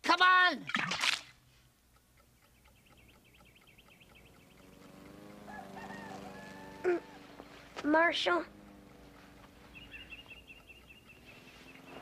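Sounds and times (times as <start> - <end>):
chicken clucking: 2.8 - 7.3
rooster crowing: 5.1 - 7.5.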